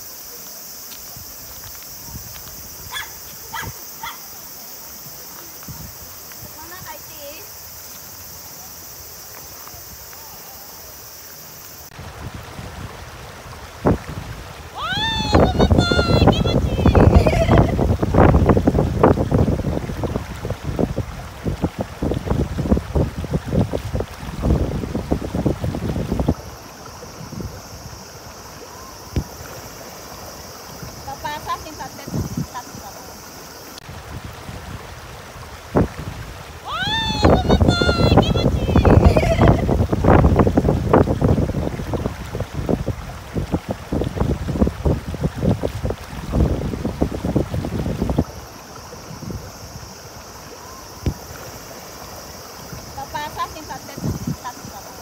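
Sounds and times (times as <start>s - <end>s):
river rapids over stones: 0.0s - 55.0s
dog barking: 2.9s - 4.2s
wind buffeting microphone: 5.0s - 7.2s, 11.9s - 33.0s, 33.8s - 50.0s, 50.8s - 55.0s.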